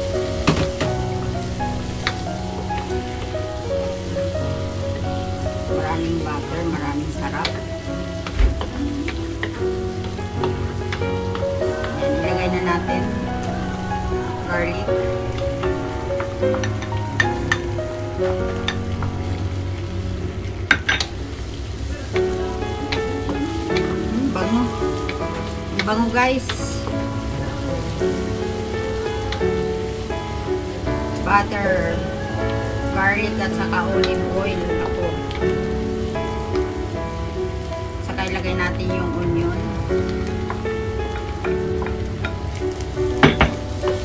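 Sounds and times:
background music: 0.0 - 44.0
garlic sizzling in oil: 0.0 - 44.0.

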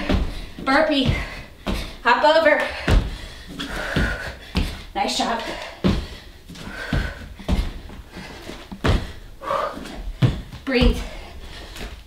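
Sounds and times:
thuds on exercise mat: 0.0 - 1.9, 8.7 - 9.2, 10.1 - 11.2.

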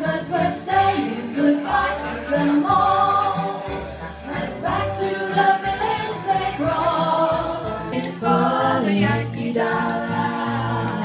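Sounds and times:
women singing in harmony: 0.0 - 11.0.

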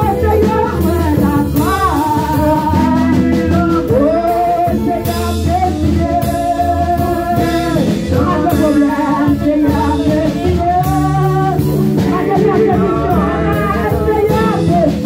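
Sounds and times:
instrumental accompaniment with beat: 0.0 - 15.0
woman singing gospel song: 0.0 - 15.0.

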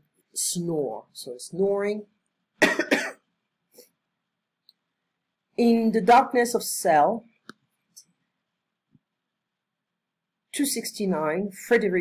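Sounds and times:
person coughing: 2.6 - 3.3.

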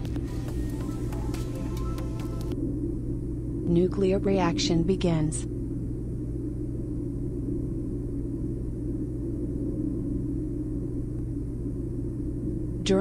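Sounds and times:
steady low drone: 0.0 - 13.0.

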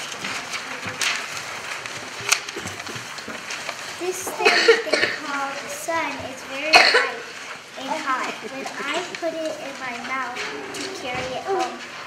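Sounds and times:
paper rustling and crinkling: 0.0 - 12.0.

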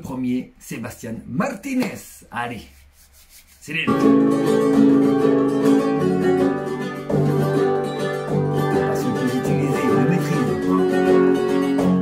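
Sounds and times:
acoustic guitar playing: 3.9 - 12.0.

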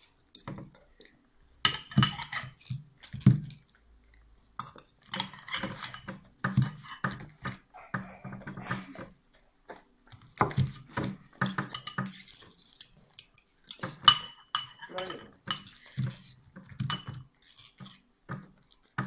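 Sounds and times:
cutlery scraping ceramic bowl: 1.7 - 3.6, 4.6 - 9.2, 10.4 - 19.0.

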